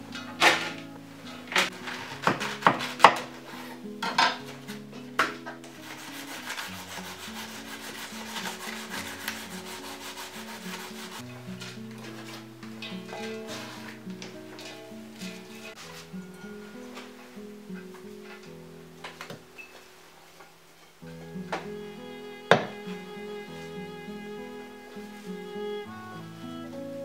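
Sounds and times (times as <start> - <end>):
blade rasping through cabbage: 5.8 - 11.2.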